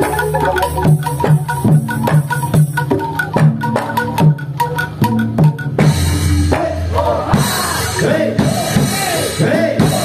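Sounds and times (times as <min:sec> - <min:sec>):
hand drum struck in steady rhythm: 0:00.0 - 0:10.0.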